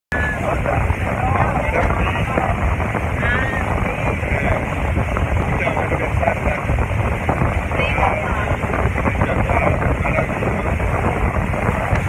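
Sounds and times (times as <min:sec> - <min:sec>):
motorboat running at speed: 0:00.1 - 0:12.0
wind buffeting microphone: 0:00.1 - 0:12.0.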